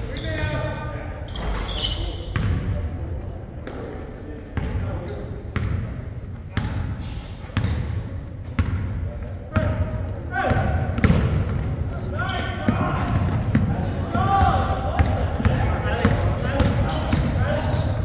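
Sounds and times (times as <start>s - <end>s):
murmur of voices: 0.0s - 18.0s.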